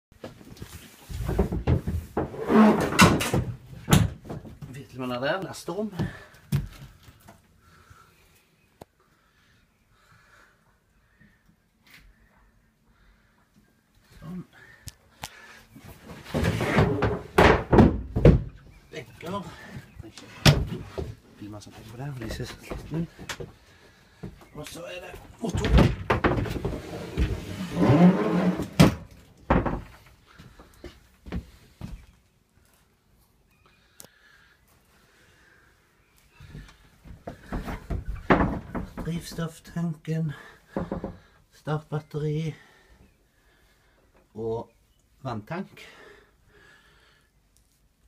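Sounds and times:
wooden thump: 16.2s - 18.6s, 25.5s - 27.9s, 28.7s - 30.0s, 37.3s - 39.4s.

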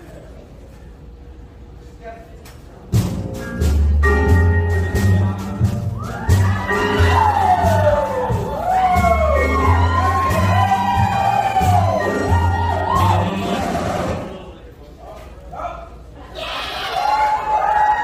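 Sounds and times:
stage music with deep bass: 3.0s - 14.5s
audience whooping and cheering: 5.6s - 14.5s, 16.2s - 18.0s.

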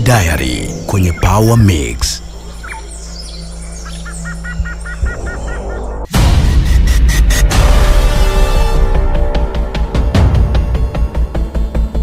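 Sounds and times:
bird calling: 0.0s - 6.1s.

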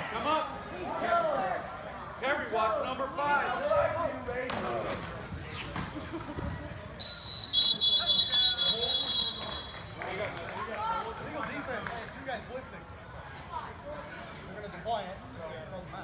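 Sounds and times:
referee whistle blast: 7.0s - 9.9s.

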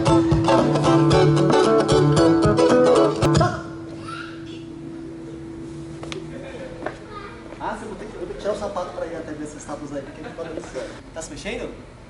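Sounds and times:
guitar strummed: 0.0s - 4.0s.

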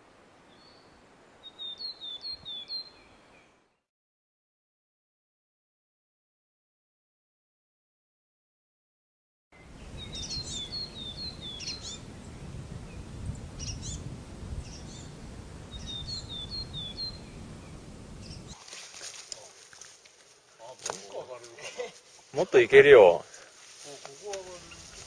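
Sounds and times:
wind rumble on microphone: 9.6s - 18.6s
small bird calling: 9.8s - 12.4s, 13.3s - 14.0s, 14.6s - 18.7s, 24.5s - 25.0s.

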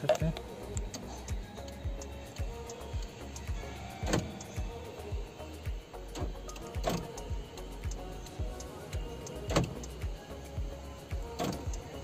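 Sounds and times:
background music with low beat: 0.0s - 12.0s
door lock actuator clunk: 4.0s - 4.6s.

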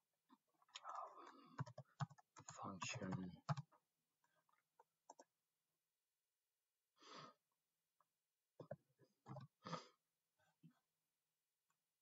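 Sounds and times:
computer keyboard keystrokes: 1.3s - 3.7s.

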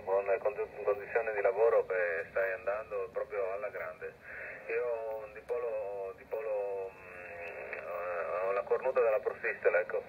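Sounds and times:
man speaking over radio: 0.0s - 10.0s.

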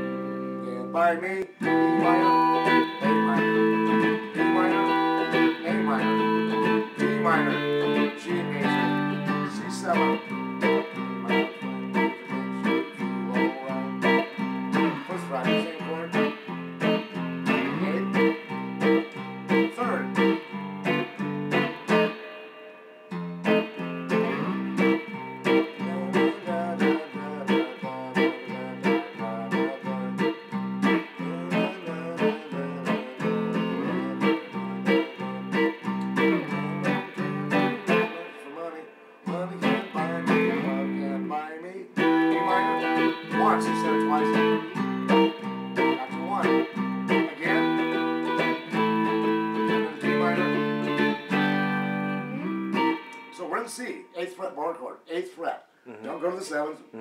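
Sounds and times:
electric guitar strumming chords: 0.0s - 54.3s.

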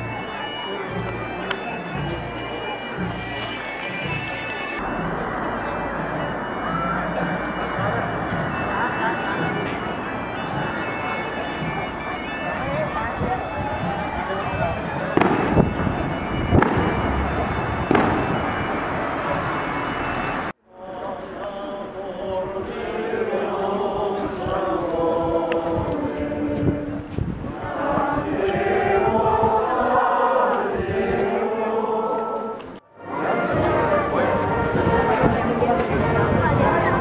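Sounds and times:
crowd talking: 0.0s - 37.0s
sharp rocket bangs: 15.2s - 17.2s.

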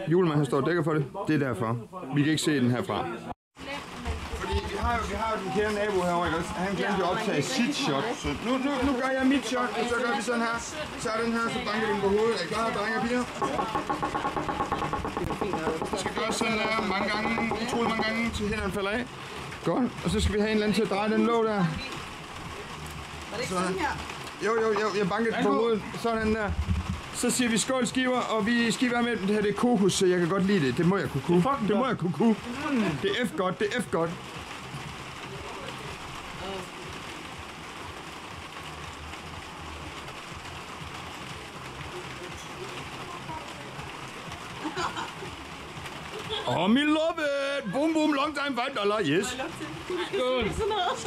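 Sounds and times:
rain falling: 3.6s - 51.0s
background voices: 11.6s - 20.6s
bottle knocking on wooden table: 13.3s - 18.5s, 26.4s - 27.0s.

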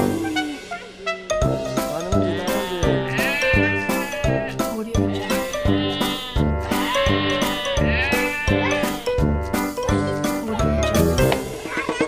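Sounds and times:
background music with steady beat: 0.0s - 12.0s
goat bleating: 2.2s - 9.1s.

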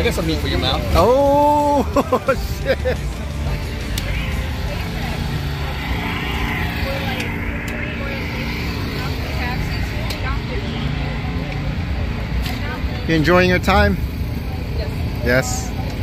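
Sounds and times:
car engines rumbling: 0.0s - 16.0s
faint voices: 1.0s - 13.1s.

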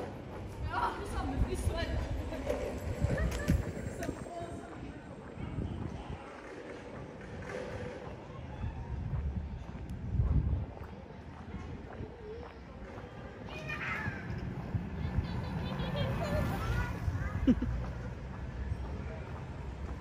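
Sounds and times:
faint distant voices: 0.0s - 20.0s
low city rumble: 0.0s - 20.0s.

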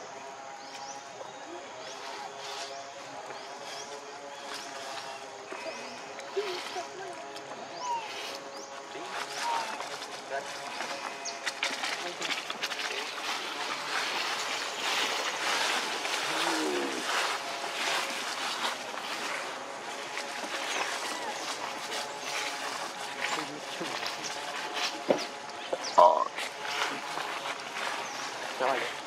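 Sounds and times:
monkey call: 1.2s - 10.1s, 20.6s - 24.5s
dry leaves crackling and rustling: 1.8s - 29.0s.

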